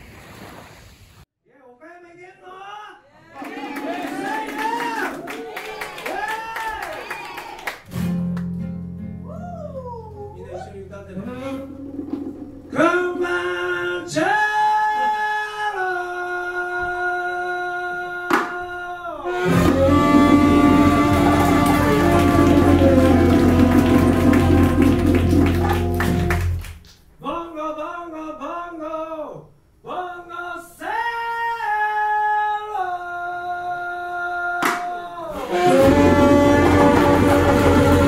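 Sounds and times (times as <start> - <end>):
live band sustained chord: 19.3 - 26.6, 35.5 - 38.0
rapid dense percussion strikes: 19.5 - 26.6, 35.7 - 38.0.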